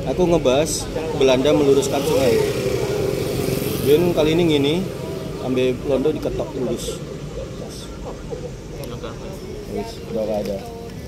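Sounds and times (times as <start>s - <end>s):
faint talk of people: 0.0s - 11.0s
traffic rumble: 0.0s - 11.0s.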